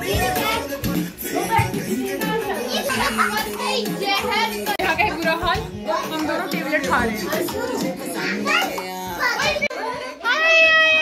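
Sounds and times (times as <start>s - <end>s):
background music: 0.0s - 9.6s
children calling out and chattering: 0.0s - 11.0s.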